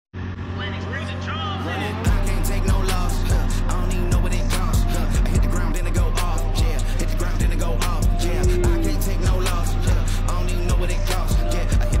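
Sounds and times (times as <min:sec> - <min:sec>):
engine running: 0:00.2 - 0:12.0.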